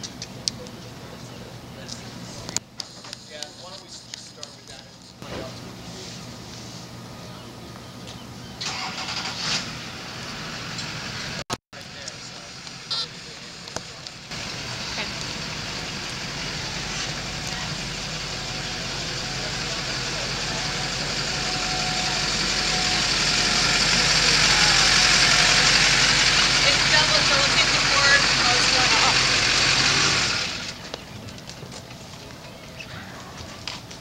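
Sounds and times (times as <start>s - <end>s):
motor engine running: 7.0s - 34.0s.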